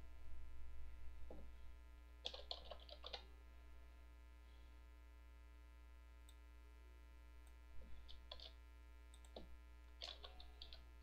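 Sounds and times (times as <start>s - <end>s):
low electrical hum: 0.0s - 11.0s
computer keyboard keystrokes: 2.2s - 3.2s, 8.0s - 8.6s, 9.2s - 10.8s.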